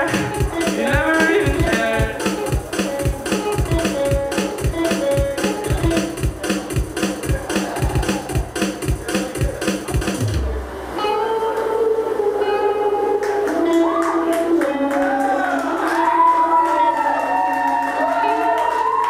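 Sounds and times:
steady drum beat: 0.0s - 10.7s
electric guitars: 0.0s - 19.0s.

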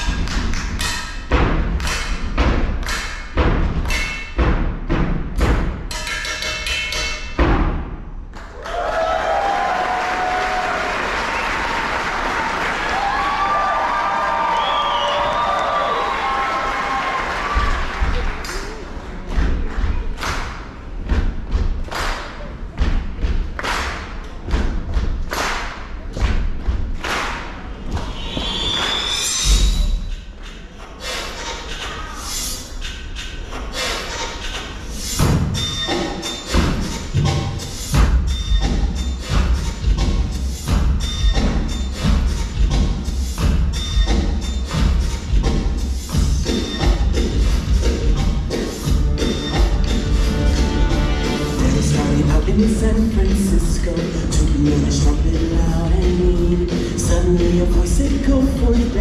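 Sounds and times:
drums and props struck: 0.0s - 8.3s, 17.4s - 18.7s, 19.3s - 30.6s, 33.5s - 59.0s.

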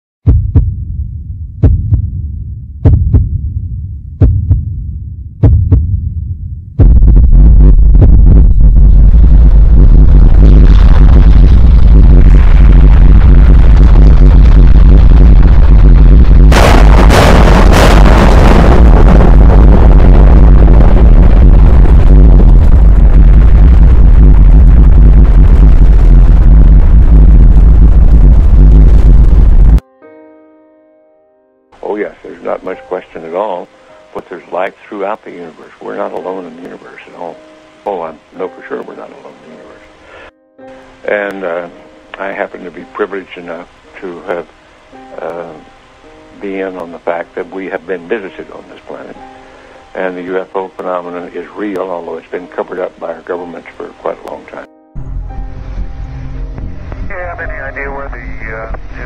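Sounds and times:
heartbeat thumps: 0.2s - 29.8s
low rumble: 0.3s - 29.8s, 55.0s - 59.0s
rocket engines roaring: 8.9s - 29.8s.

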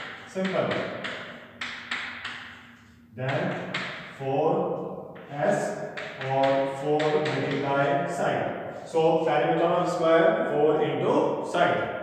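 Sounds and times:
chalk tapping on chalkboard: 0.0s - 4.2s, 5.2s - 8.0s.

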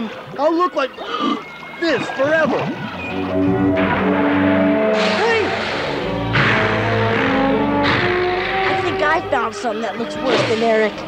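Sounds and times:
dramatic background music: 2.6s - 11.0s.

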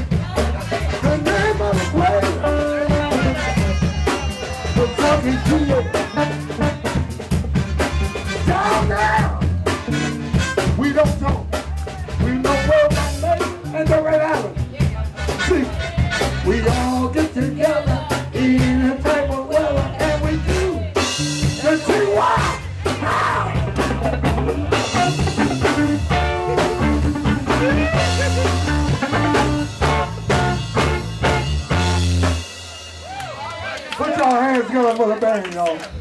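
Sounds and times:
blues band playing: 0.0s - 36.0s.

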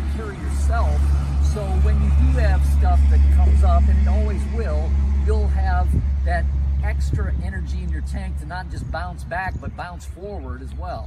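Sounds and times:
man speaking: 0.0s - 11.0s
steady low rumble: 0.0s - 11.0s.

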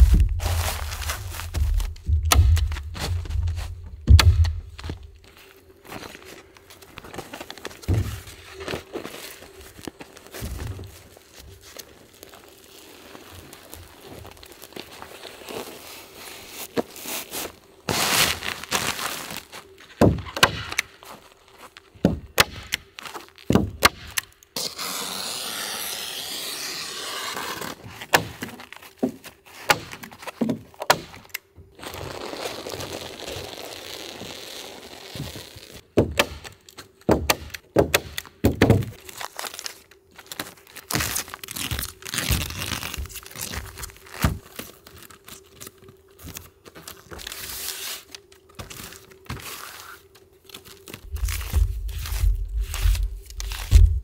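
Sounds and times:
plastic sheet crinkling: 0.0s - 20.0s, 31.8s - 35.8s, 38.9s - 54.0s.

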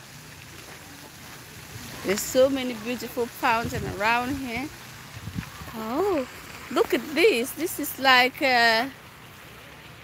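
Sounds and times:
fountain water splashing: 0.0s - 10.0s
wind on microphone: 3.4s - 6.2s.

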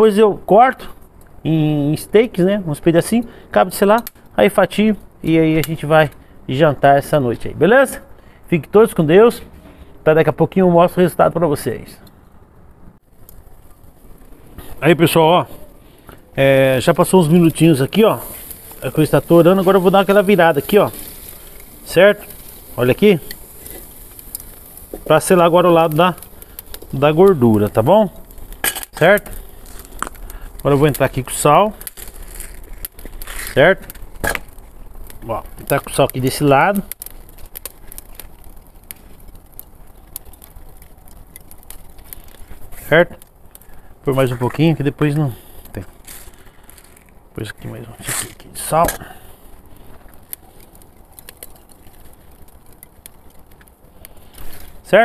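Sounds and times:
crackling pops: 3.9s - 4.4s, 13.0s - 55.0s
man speaking: 10.1s - 12.0s, 14.8s - 15.7s, 16.4s - 21.1s, 21.8s - 23.3s, 25.0s - 26.2s, 26.9s - 28.2s, 28.9s - 29.4s, 30.6s - 31.8s, 33.5s - 33.8s, 35.2s - 36.9s, 44.0s - 45.9s, 47.4s - 49.2s
meat sizzling on a grill: 13.2s - 47.1s, 47.7s - 55.0s.

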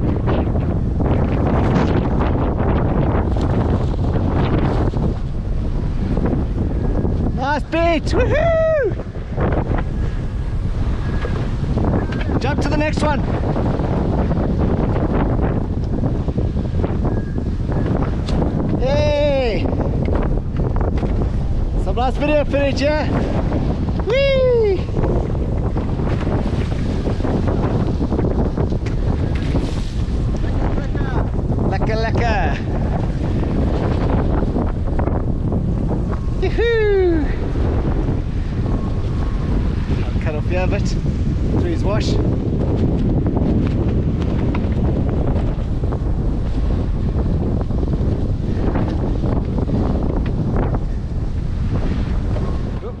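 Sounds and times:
rush of sea and spray: 0.0s - 53.0s
wind buffeting microphone: 0.0s - 53.0s.

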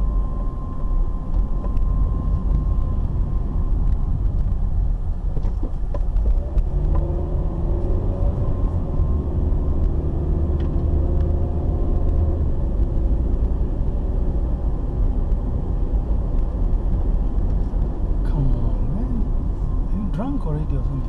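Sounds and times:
car engine hum: 0.0s - 21.0s
road noise inside car: 0.0s - 21.0s.

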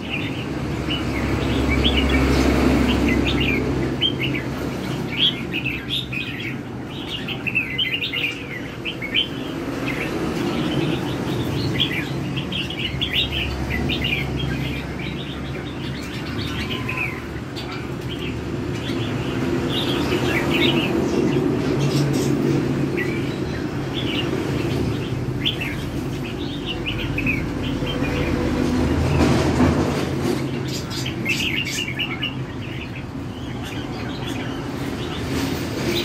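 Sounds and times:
birds singing rapid chattering phrases: 0.0s - 36.0s.

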